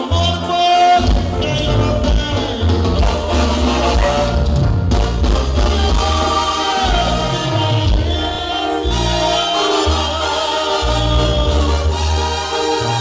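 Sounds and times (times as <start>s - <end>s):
brass band playing: 0.0s - 13.0s
low bass line: 0.0s - 13.0s.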